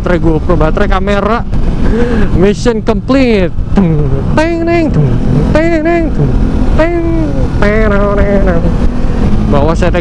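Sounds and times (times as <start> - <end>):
motorcycle engine cruising: 0.0 - 10.0
wind rush on microphone: 0.0 - 10.0
man singing drawn-out notes: 3.8 - 8.8.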